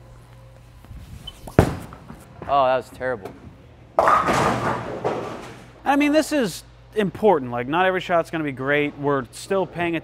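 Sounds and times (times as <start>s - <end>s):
bowler's footsteps: 0.6s - 5.8s
bowling ball rolling: 1.4s - 5.8s
bowling ball thud on lane: 4.0s - 5.6s.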